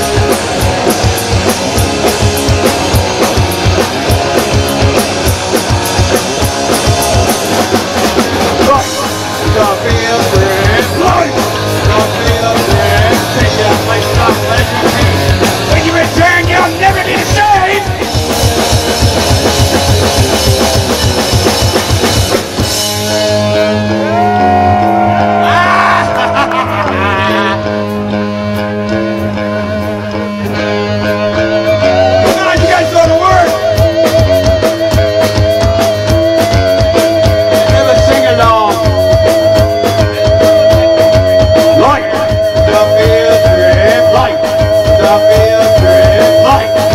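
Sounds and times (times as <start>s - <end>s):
drum kit fast beat: 0.0s - 27.6s, 31.1s - 46.9s
bass guitar: 0.0s - 46.9s
electric guitar: 0.0s - 46.9s
punk rock band playing: 0.0s - 46.9s.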